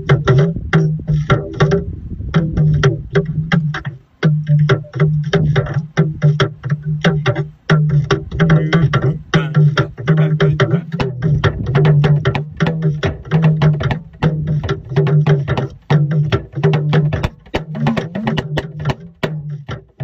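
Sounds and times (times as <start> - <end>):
talking drum strokes: 0.0 - 20.0.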